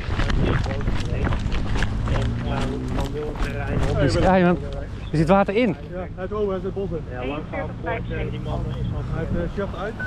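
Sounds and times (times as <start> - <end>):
running footsteps: 0.0 - 5.4
handling and wind rumble: 0.0 - 6.7.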